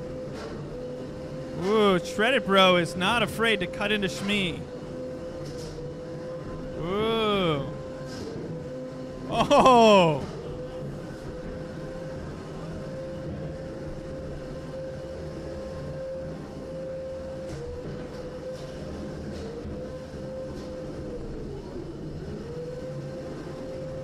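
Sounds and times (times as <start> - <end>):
arena noise: 1.6 - 4.6, 6.8 - 7.8, 9.3 - 10.3.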